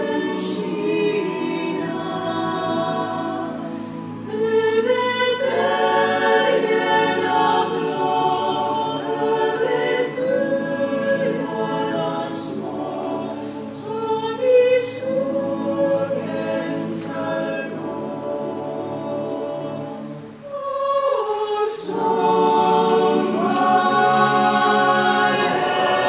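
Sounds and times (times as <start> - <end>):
barbershop chorus singing a cappella: 0.0 - 26.0.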